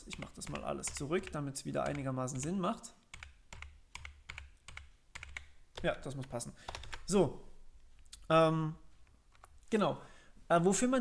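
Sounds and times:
person speaking: 0.0 - 3.2, 5.4 - 11.0
keyboard typing: 0.0 - 7.2.

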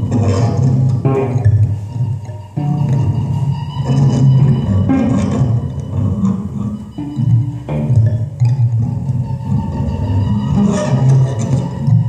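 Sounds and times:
improvised ensemble music: 0.0 - 12.0.

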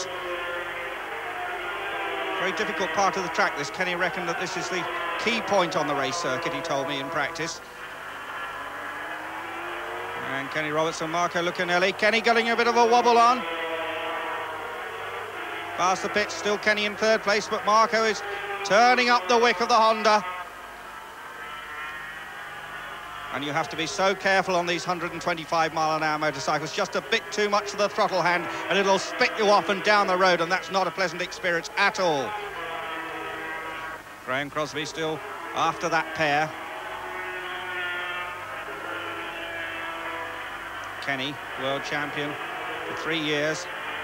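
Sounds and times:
old broadcast sound: 0.0 - 44.0
racing motorcycles high buzz: 0.0 - 44.0.

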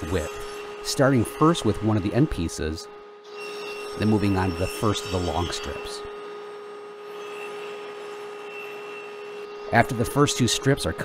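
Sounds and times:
table saw humming: 0.0 - 11.0.

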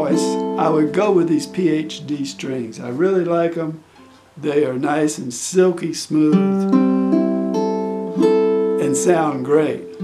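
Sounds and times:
ukulele picked chords: 0.0 - 4.2, 6.2 - 10.0.

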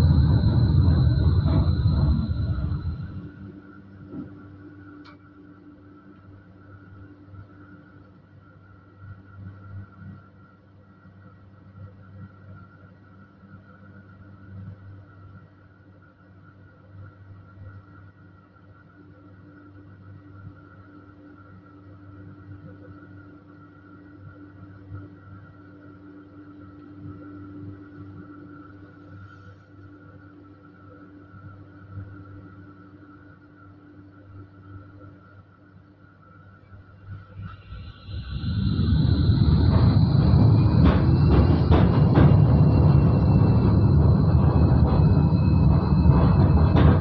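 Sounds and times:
low wavering rumble: 0.0 - 6.0, 36.7 - 47.0
tram electrical hum: 0.0 - 47.0.

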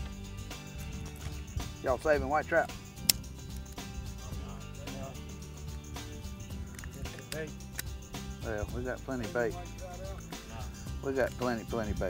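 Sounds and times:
background music: 0.0 - 12.0
sharp click: 6.7 - 8.0.

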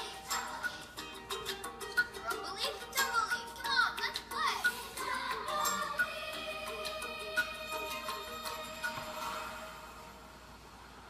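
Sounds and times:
children's tv music: 0.0 - 11.0.

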